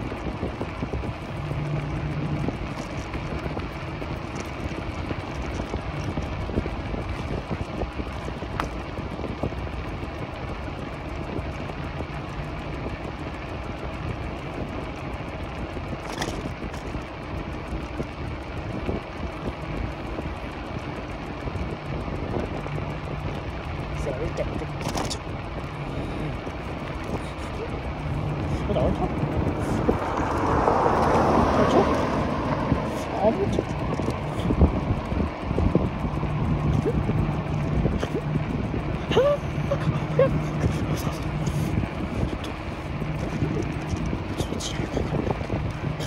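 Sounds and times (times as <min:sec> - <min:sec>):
faint low motor hum: 0:00.0 - 0:46.0
tyres rolling on asphalt: 0:00.0 - 0:46.0
wind on microphone: 0:00.0 - 0:46.0.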